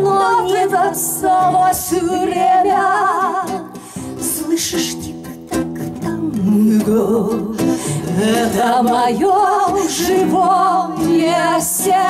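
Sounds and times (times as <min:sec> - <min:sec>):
acoustic bass guitar: 0:00.0 - 0:12.0
guitar: 0:00.0 - 0:12.0
women singing with vibrato: 0:00.0 - 0:12.0.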